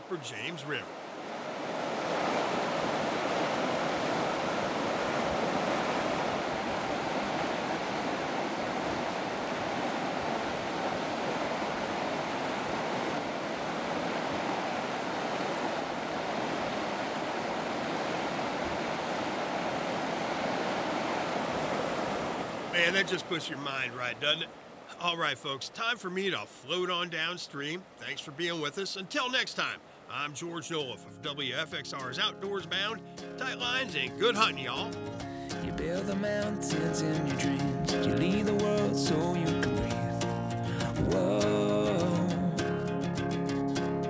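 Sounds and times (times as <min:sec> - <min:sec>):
water rushing over rocks: 0:00.0 - 0:25.4.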